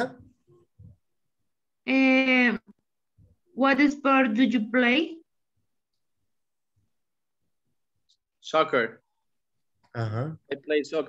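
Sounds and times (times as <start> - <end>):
man speaking: 10.0 - 11.0.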